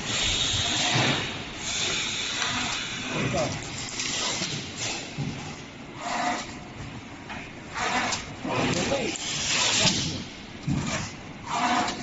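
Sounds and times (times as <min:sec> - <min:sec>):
plastic parts rubbing and scraping: 0:07.7 - 0:12.0.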